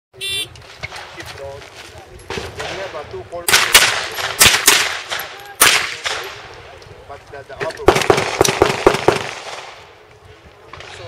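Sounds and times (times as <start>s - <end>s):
rifle shots: 2.3s - 6.6s, 7.8s - 9.9s.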